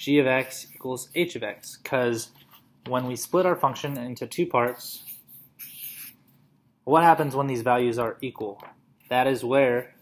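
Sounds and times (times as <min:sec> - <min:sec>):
marker squeaking on paper: 0:04.7 - 0:06.4.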